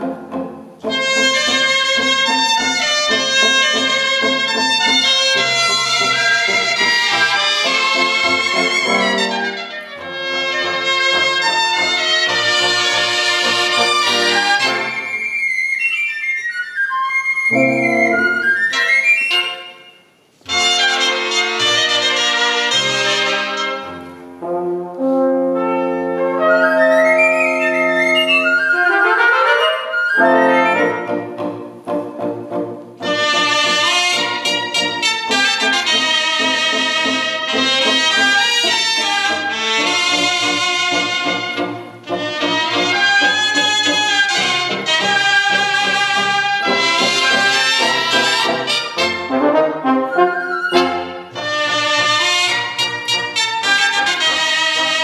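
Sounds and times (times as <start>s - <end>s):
double bass: 0.0s - 14.9s, 30.2s - 49.6s
brass and reed band playing: 0.0s - 15.3s, 17.5s - 55.0s.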